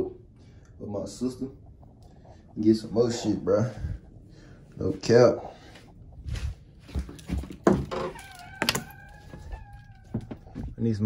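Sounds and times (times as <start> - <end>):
sandal footsteps on tile: 5.5 - 10.8
door knocks and thumps: 7.3 - 8.9.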